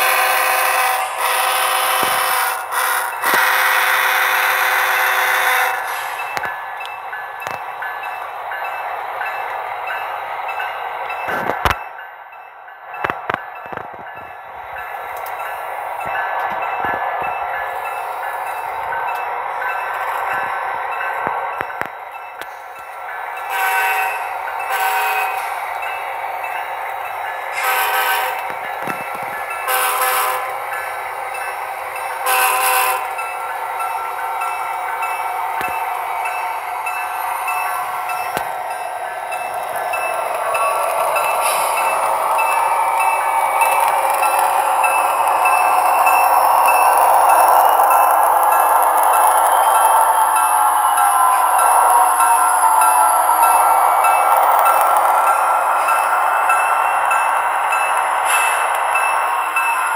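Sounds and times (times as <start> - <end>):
model locomotive horn blasts: 0.0 - 6.1, 23.5 - 25.5, 27.5 - 28.5, 29.6 - 30.5, 32.2 - 33.2
freight cars running noise: 0.0 - 59.9.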